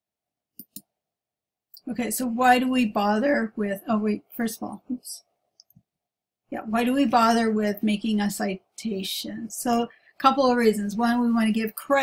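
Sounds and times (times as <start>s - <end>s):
computer mouse clicks: 0.6s - 0.9s
woman speaking: 1.8s - 5.3s, 6.5s - 12.0s.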